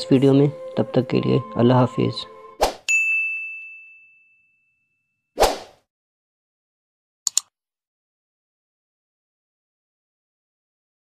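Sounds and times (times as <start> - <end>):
bright bell ding: 2.9 - 5.1.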